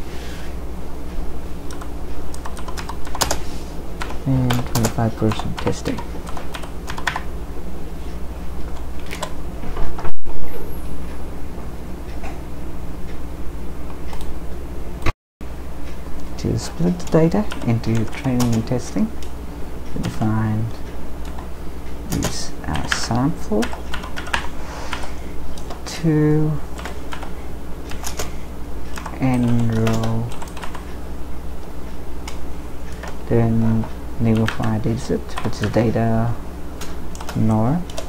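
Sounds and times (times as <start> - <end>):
steady low hum: 0.0 - 38.0
computer keyboard typing: 1.7 - 3.4, 4.0 - 7.3, 8.7 - 9.4, 16.5 - 19.3, 22.1 - 25.9, 26.7 - 28.3, 28.9 - 30.9, 33.8 - 36.0, 36.8 - 38.0.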